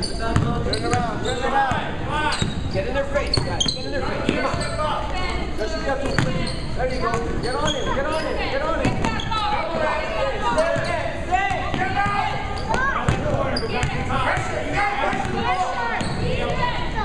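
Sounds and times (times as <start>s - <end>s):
sneaker squeaks: 0.0s - 16.8s.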